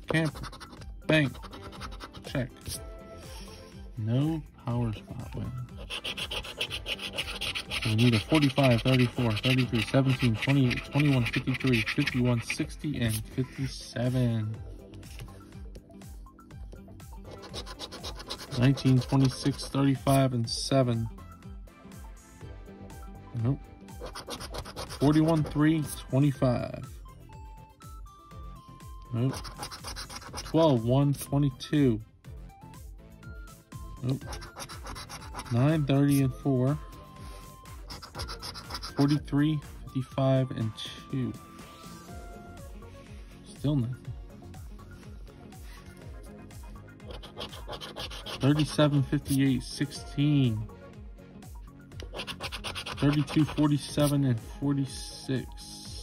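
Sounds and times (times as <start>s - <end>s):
coin scratching lottery ticket: 0.0s - 2.8s, 5.8s - 13.2s, 17.3s - 20.2s, 24.0s - 25.6s, 29.2s - 30.6s, 34.2s - 36.2s, 37.8s - 39.2s, 47.0s - 49.4s, 52.0s - 54.1s.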